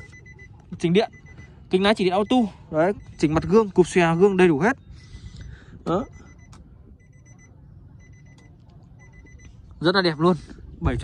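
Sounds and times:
car warning chime beeping: 0.0 - 10.5.

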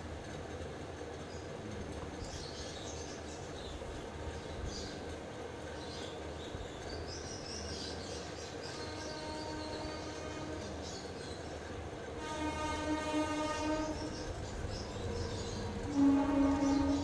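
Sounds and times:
buzzy horn-like tone: 12.2 - 14.2, 15.6 - 17.0.

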